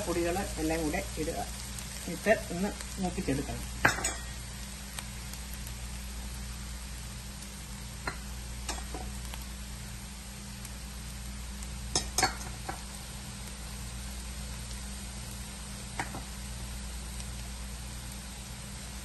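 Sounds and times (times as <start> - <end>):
onions sizzling in a pan: 0.0 - 19.0.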